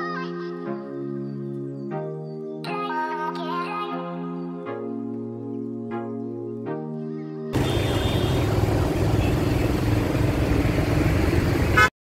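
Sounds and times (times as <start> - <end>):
background music: 0.0 - 8.1
street traffic: 7.6 - 12.0
vehicle engine rumbling: 7.6 - 12.0.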